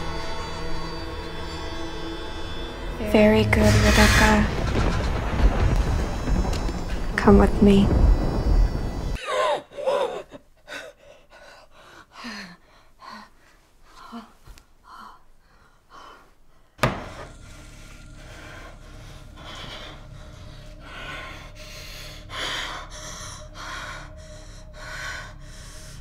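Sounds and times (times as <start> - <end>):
steady low hum: 15.2 - 26.0.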